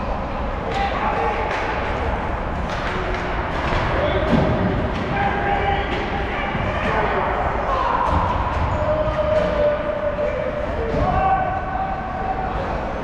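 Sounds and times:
knocks of sticks and puck: 0.7s - 2.0s, 2.6s - 7.1s, 7.7s - 9.9s
players shouting: 3.8s - 13.0s.

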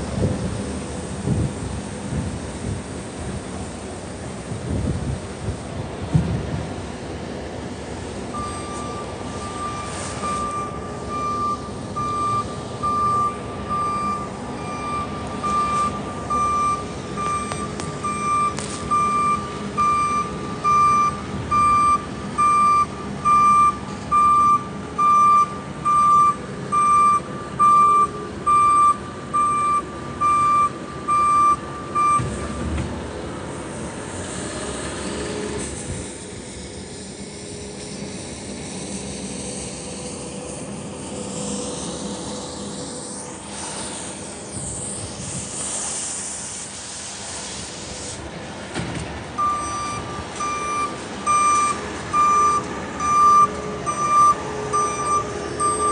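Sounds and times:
steady outdoor hiss: 0.0s - 55.9s
vehicle backup alarm beeping: 8.3s - 32.8s, 49.4s - 55.9s.

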